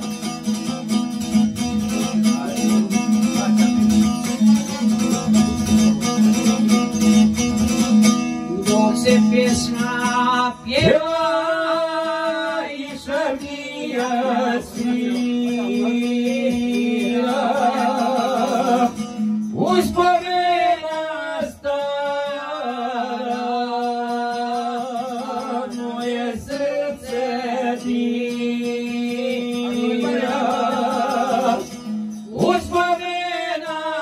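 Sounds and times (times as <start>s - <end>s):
man singing folk song: 0.0s - 34.0s
strummed long-necked lute: 0.0s - 34.0s.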